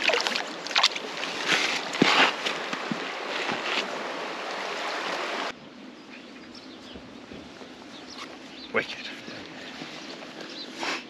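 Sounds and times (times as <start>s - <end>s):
river rushing over stones: 0.0s - 5.6s.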